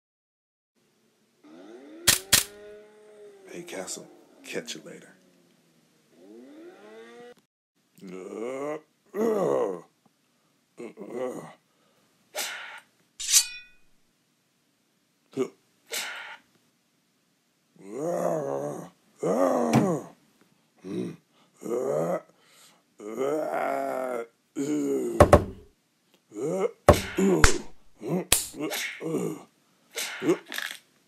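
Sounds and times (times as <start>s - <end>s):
metallic sword strike ringing: 13.2s - 13.9s.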